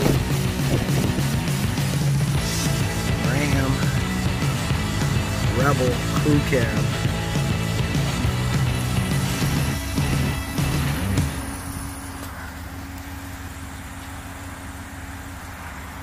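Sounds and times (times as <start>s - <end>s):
music with low bass line: 0.0s - 13.9s
vehicle engine idling: 0.0s - 16.0s.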